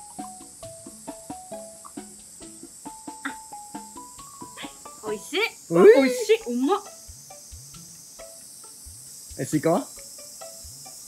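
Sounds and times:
high-pitched insect drone: 0.0 - 11.0.

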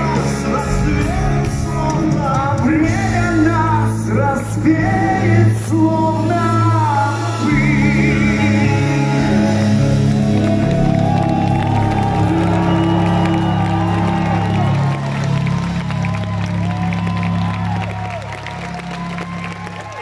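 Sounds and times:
crowd cheering and whooping: 9.2 - 20.0
crowd whistling: 9.8 - 20.0.

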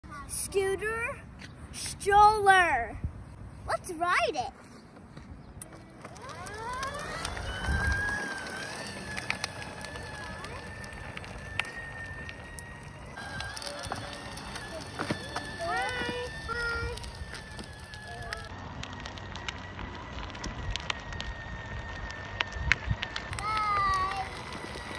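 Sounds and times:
electric motor whining: 5.7 - 24.9.

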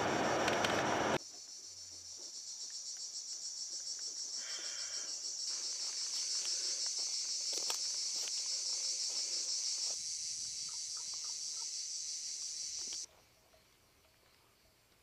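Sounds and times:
insects chirring: 1.2 - 15.0.

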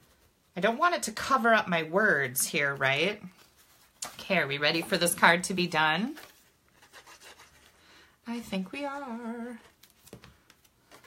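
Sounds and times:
paper card rustling: 3.2 - 7.8, 9.6 - 11.0.

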